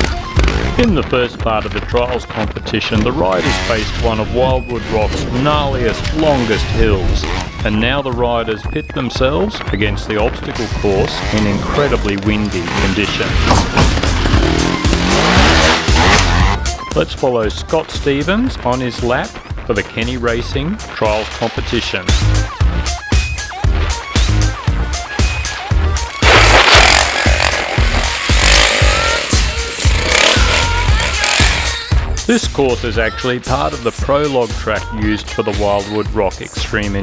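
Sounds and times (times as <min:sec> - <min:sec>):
background music: 0:00.0 - 0:37.0
motorcycle engine revving: 0:03.0 - 0:04.2, 0:10.5 - 0:16.8, 0:26.0 - 0:31.9
wheel spinning in loose dirt: 0:10.8 - 0:16.6, 0:26.1 - 0:31.9
music with steady beat: 0:13.5 - 0:20.9, 0:22.1 - 0:32.4.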